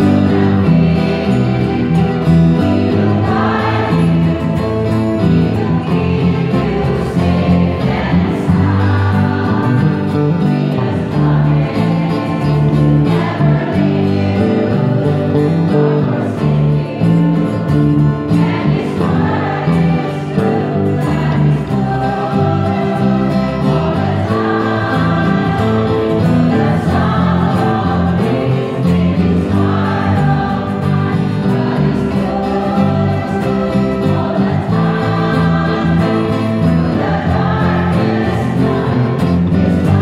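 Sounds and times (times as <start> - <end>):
choir singing gospel: 0.0 - 40.0
electric bass guitar: 0.0 - 40.0
strummed acoustic guitars: 0.0 - 40.0.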